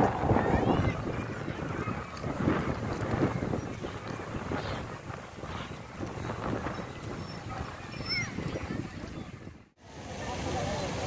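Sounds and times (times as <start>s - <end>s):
wind buffeting microphone: 0.0s - 9.8s
crowd walking and chatting: 0.0s - 11.0s.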